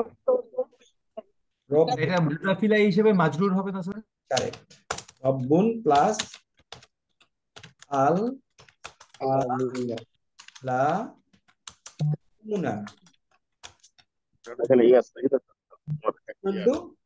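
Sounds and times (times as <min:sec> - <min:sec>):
person speaking: 0:00.0 - 0:06.4, 0:07.8 - 0:13.3, 0:14.4 - 0:17.0.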